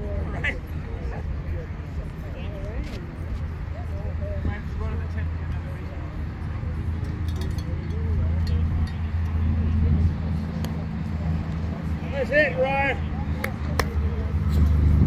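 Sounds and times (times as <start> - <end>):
faint distant voices: 0.0 - 15.0
low engine hum: 0.0 - 15.0.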